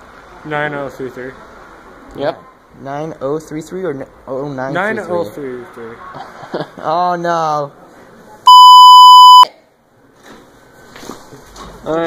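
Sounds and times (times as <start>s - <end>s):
high-pitched censor beep: 8.5s - 9.5s.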